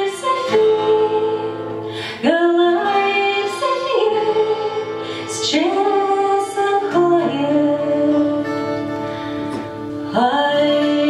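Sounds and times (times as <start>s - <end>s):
woman singing slow song: 0.0s - 9.0s, 9.9s - 11.0s
acoustic guitar: 0.0s - 11.0s.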